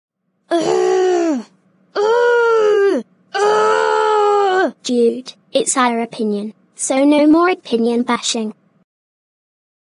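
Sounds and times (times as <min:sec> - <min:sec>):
person crying out: 0:00.5 - 0:04.8.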